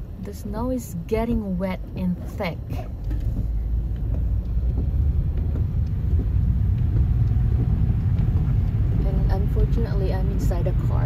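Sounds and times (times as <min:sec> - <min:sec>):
car engine rumble: 0:00.0 - 0:11.0
road noise: 0:00.0 - 0:11.0.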